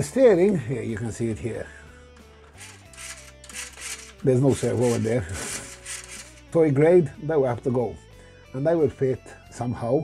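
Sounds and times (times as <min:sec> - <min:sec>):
soft background music: 0:00.0 - 0:10.0
hands rubbing plastic toy: 0:02.5 - 0:06.4.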